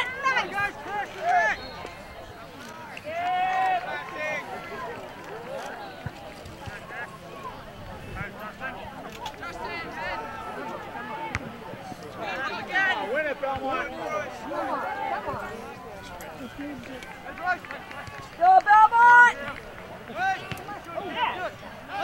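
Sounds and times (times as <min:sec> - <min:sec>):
voices calling and shouting: 0:00.0 - 0:22.0.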